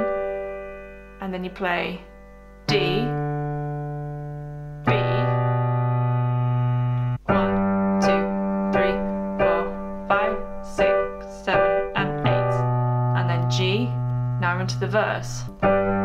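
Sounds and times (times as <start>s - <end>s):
piano chords: 0.0s - 16.0s.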